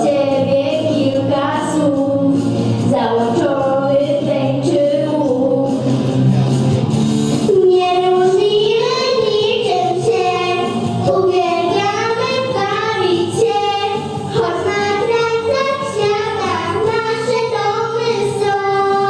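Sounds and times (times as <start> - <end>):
girls singing a duet: 0.0 - 6.1, 7.4 - 19.0.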